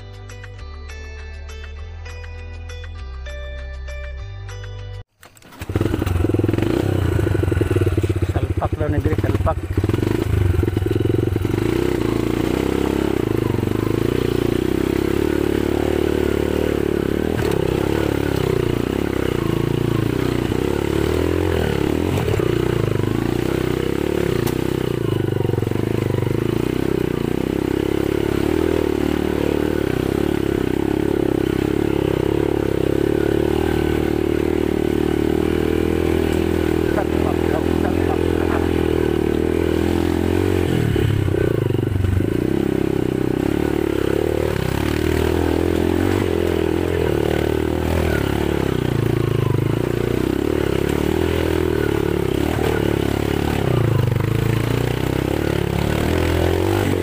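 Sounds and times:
motorcycle engine running slowly: 5.4s - 57.0s.

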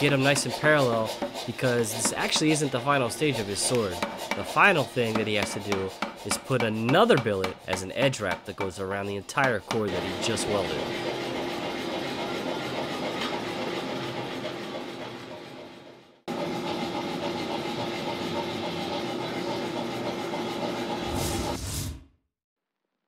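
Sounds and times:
gas burner roaring: 9.9s - 21.8s.

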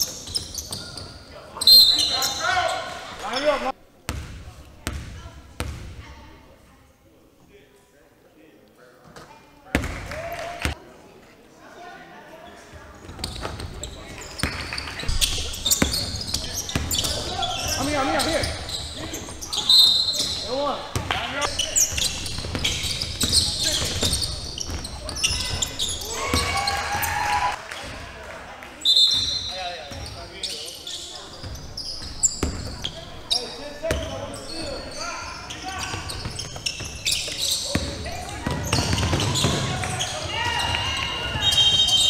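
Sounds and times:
sneaker squeaks: 0.0s - 6.0s, 12.4s - 28.0s, 28.8s - 42.0s
voices echoing in hall: 0.0s - 42.0s
basketball bouncing: 4.1s - 6.0s, 20.2s - 21.2s, 31.4s - 32.7s, 36.2s - 40.0s
players calling out: 14.3s - 28.0s, 29.1s - 42.0s.

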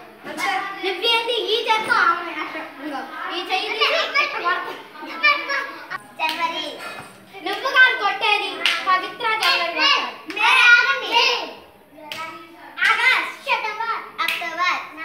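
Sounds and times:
children's voices playing: 0.0s - 15.0s
hand claps: 6.2s - 6.6s, 8.5s - 10.5s, 12.1s - 13.0s, 14.2s - 14.6s.

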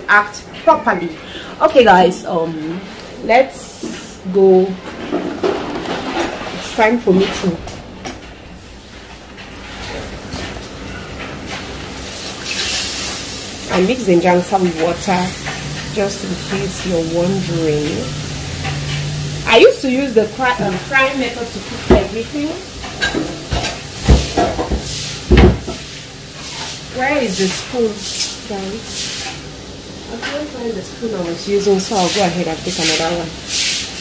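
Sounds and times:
liquid sizzling in hot pan: 12.0s - 34.0s.

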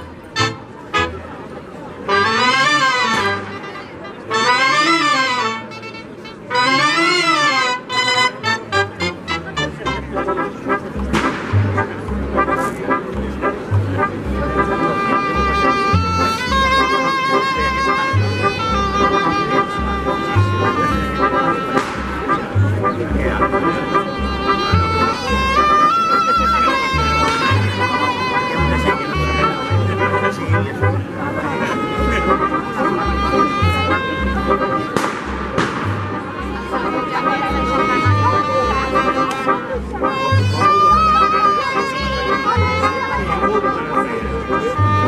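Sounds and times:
band of shawms and brass: 0.0s - 45.0s
wavering melodic phrases: 0.0s - 45.0s
double-bass beat: 8.6s - 45.0s.

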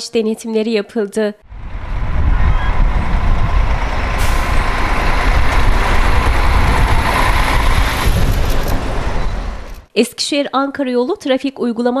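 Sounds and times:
road traffic rumble: 1.4s - 9.9s.

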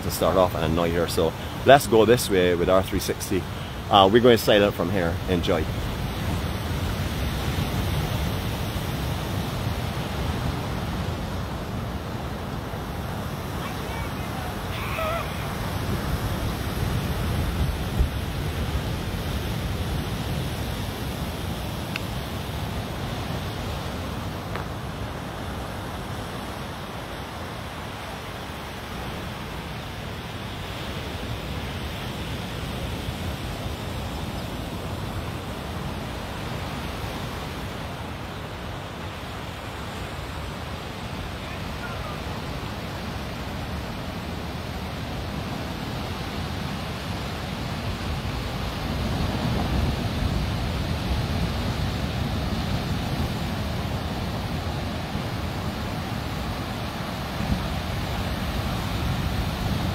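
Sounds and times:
surf breaking on a beach: 0.0s - 59.9s
wind rumbling on microphone: 5.2s - 26.4s.

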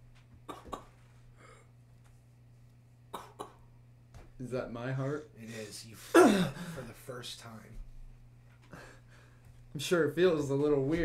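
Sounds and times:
person coughing: 0.5s - 1.0s, 3.2s - 3.6s, 6.0s - 6.9s.

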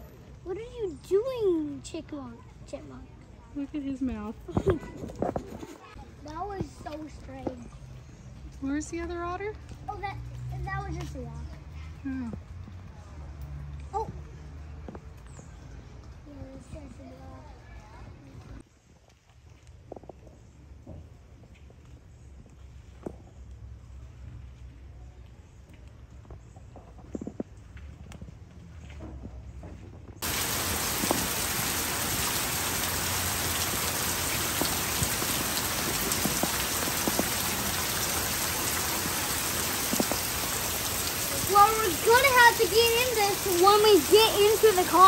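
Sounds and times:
heavy rain on pavement and foliage: 30.2s - 45.0s.

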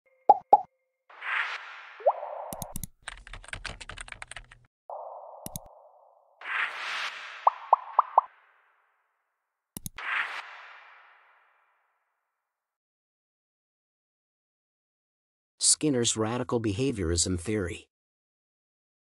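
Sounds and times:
short pitched bloops: 2.0s - 2.8s, 7.5s - 8.3s
interface pops: 2.0s - 2.9s, 4.9s - 8.3s
mouse click: 2.5s - 2.9s, 5.4s - 5.8s, 9.8s - 10.0s
keyboard typing clicks: 2.5s - 4.6s, 5.4s - 5.7s, 9.8s - 10.0s
swooshes: 5.4s - 8.8s, 10.0s - 11.8s.

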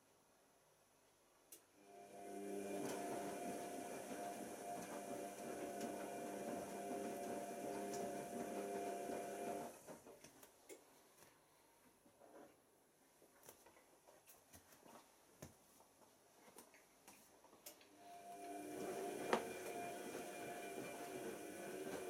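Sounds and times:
washing machine whine: 1.8s - 10.0s, 18.0s - 22.0s.

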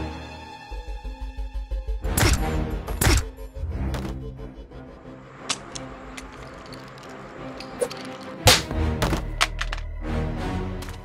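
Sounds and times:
tense film score music: 0.0s - 11.0s.

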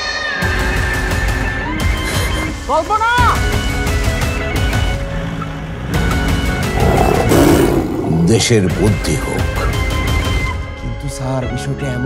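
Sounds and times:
background music: 0.0s - 12.0s
tiger roaring: 6.6s - 9.0s.

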